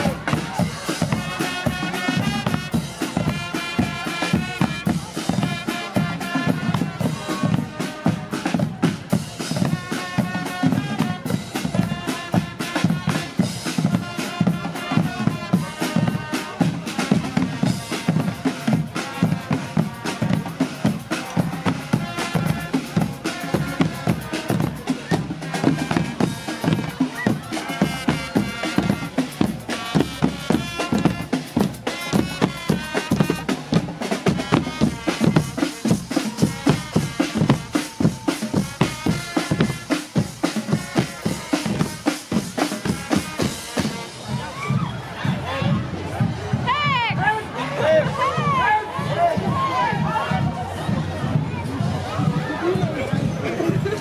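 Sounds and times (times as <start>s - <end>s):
drums beating fast rhythm: 0.0s - 54.0s
trumpets and brass: 0.0s - 54.0s.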